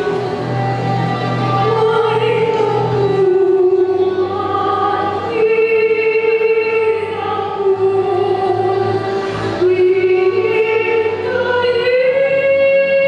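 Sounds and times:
woman singing a slow ballad: 1.6 - 8.9, 9.6 - 13.0.

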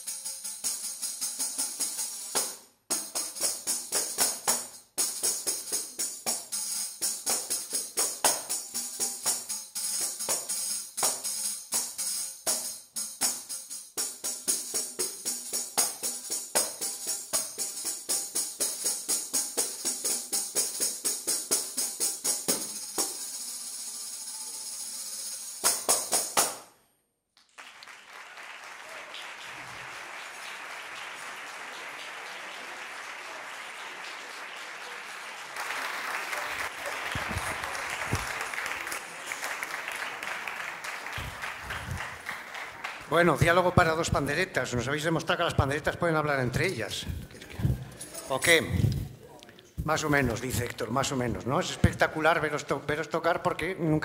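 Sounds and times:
tambourines playing: 0.0 - 26.7, 30.3 - 44.0
audience applause: 27.4 - 43.8.

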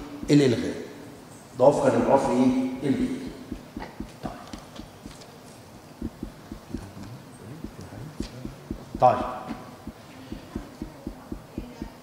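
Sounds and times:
soft dull knocks: 3.3 - 5.2, 6.0 - 6.9, 7.7 - 9.3, 9.9 - 12.0.

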